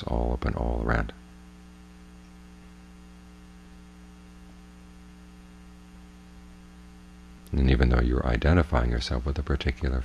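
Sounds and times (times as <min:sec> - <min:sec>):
electrical mains hum: 0:00.0 - 0:10.0
faint recording hiss: 0:00.0 - 0:10.0.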